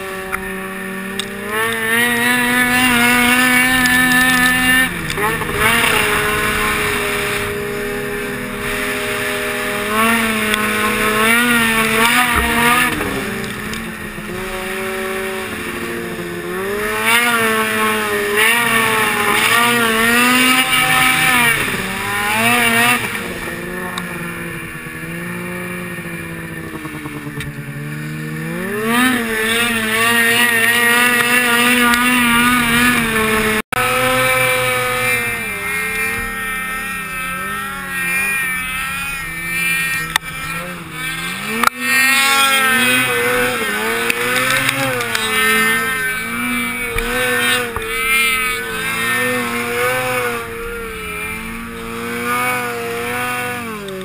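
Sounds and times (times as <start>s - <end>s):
snowmobile engine running: 0.0s - 54.0s.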